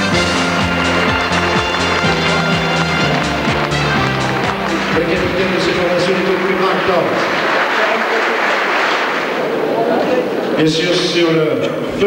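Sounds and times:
crowd applauding: 0.0s - 11.2s.

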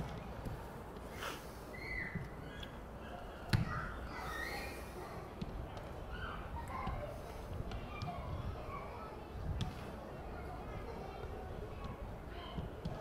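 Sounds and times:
distant shouts and calls: 1.4s - 9.1s.

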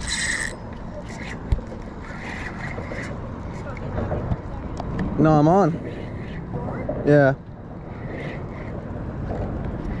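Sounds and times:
wind buffeting microphone: 1.4s - 10.0s.

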